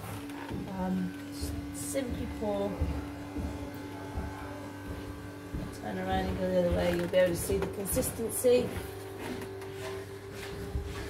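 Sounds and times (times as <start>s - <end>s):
electrical buzz: 0.0s - 11.0s.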